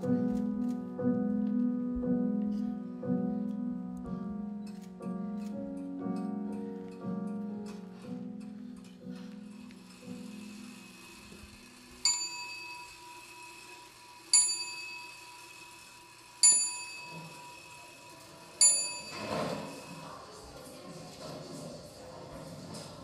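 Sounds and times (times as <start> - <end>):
small bell struck: 16.4 - 17.6, 18.6 - 19.9.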